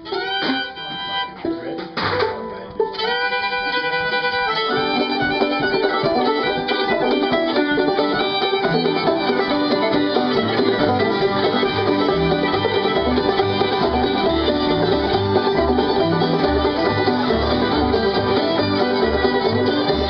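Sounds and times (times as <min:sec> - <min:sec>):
banjo: 0:00.0 - 0:20.0
fiddle: 0:00.0 - 0:20.0
mandolin: 0:00.0 - 0:20.0
acoustic guitar: 0:04.7 - 0:20.0
low bass notes: 0:07.3 - 0:20.0.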